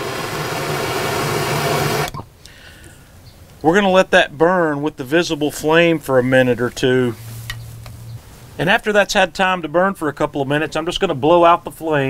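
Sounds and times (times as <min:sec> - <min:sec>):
torch flame hissing: 0:00.0 - 0:02.1.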